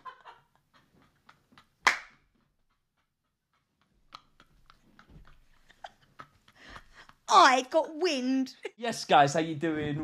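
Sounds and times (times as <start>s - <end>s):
stifled laughter: 3.6s - 7.2s.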